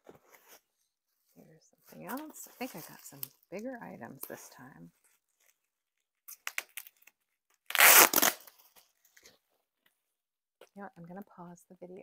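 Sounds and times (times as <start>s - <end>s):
packing tape crackling: 5.3s - 8.8s
packing tape tearing rip: 6.3s - 8.7s.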